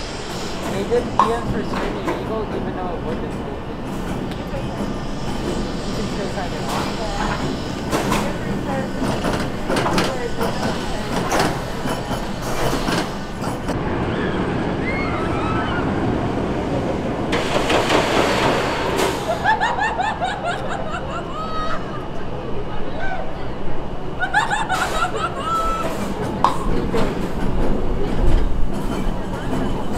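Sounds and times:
loud hiss: 0.0 - 2.4, 4.8 - 13.6
wheels clanking on track: 0.0 - 20.8, 24.3 - 29.9
roller coaster train rolling: 0.0 - 29.9
people's voices: 0.5 - 18.0, 19.1 - 29.9.

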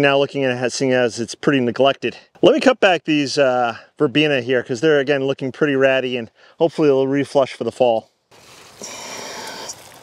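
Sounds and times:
plant stems rustling: 8.3 - 10.0.

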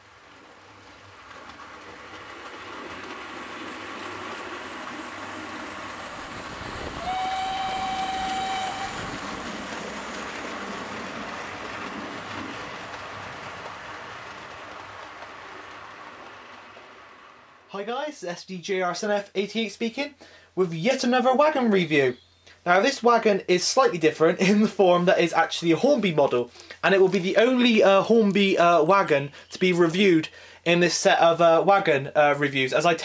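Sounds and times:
model train running: 0.0 - 17.7
steam whistle: 6.8 - 9.3.

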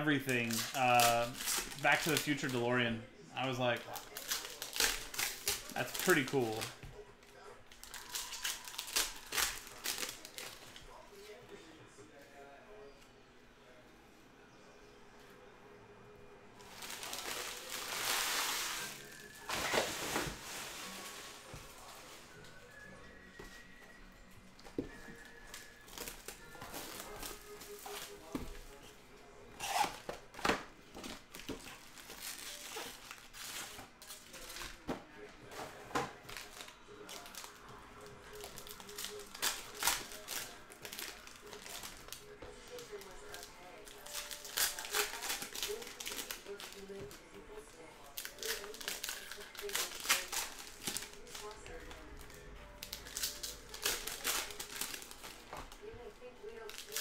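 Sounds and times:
plastic wrappers crinkling and tearing: 0.0 - 11.4, 16.6 - 22.9, 24.6 - 29.0, 29.6 - 57.0.

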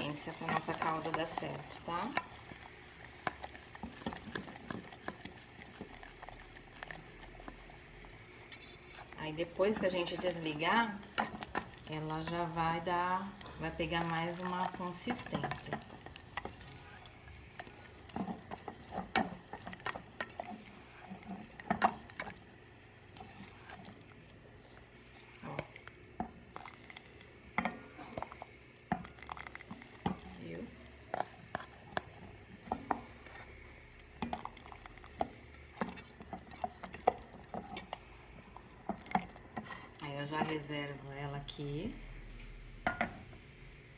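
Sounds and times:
spoon knocking and scraping pot: 18.1 - 22.4, 42.8 - 43.2.

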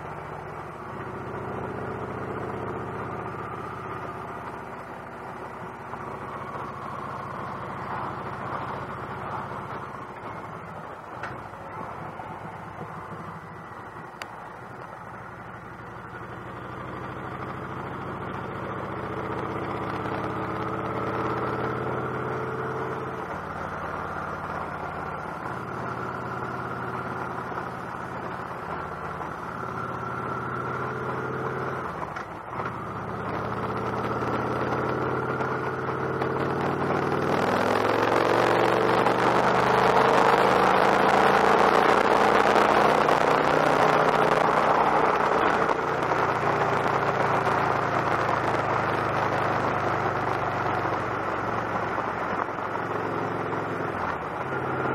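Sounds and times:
motorcycle engine accelerating: 0.0 - 54.9.

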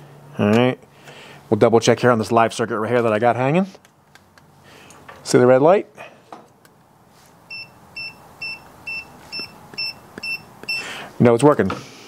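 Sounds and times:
voltage tester beeping: 7.5 - 10.9.

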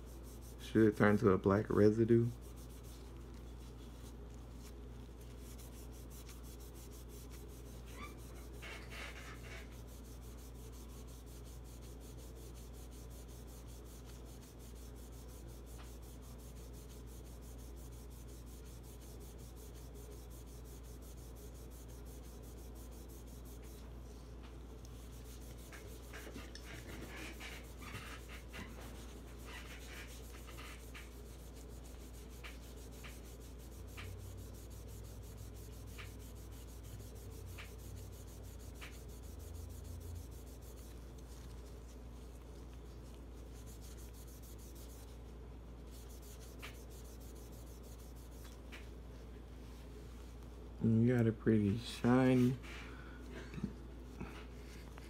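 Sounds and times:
cloth rubbing on metal: 0.0 - 50.7
steady low hum: 0.0 - 55.0.

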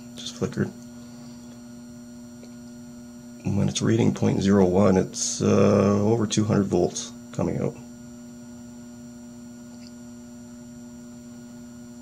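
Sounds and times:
battery charger hum and whine: 0.0 - 12.0.

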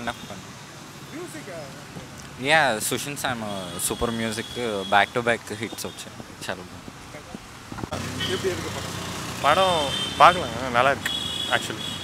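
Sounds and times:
passing road vehicles hum: 5.2 - 12.0.

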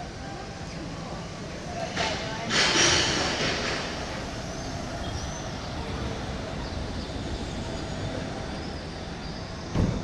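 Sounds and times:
city traffic rumble: 0.0 - 10.0
loud low thump: 9.7 - 10.0.

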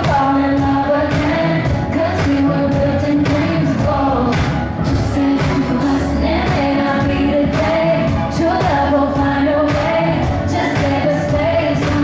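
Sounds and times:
female lead vocal: 0.0 - 12.0.

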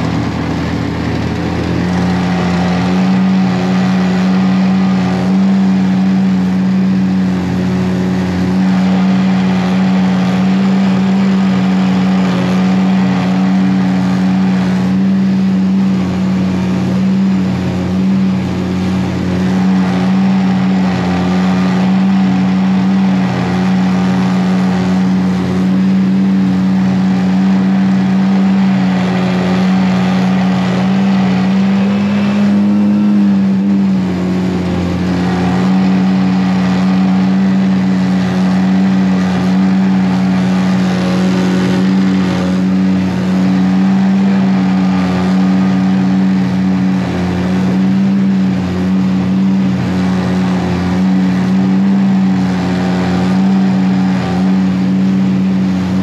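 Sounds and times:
outboard motor running: 0.0 - 56.0.

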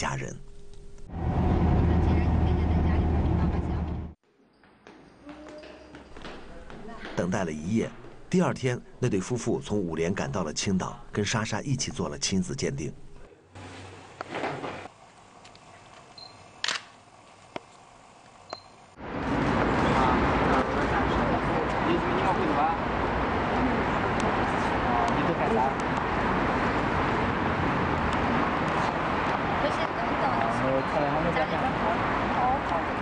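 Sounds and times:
road vehicle engine and road hum: 1.0 - 4.2, 14.8 - 33.0
rushing noise: 1.1 - 4.2
camera focus beep: 16.2 - 16.8, 18.5 - 18.8
camera shutter clicking: 16.6 - 16.9.

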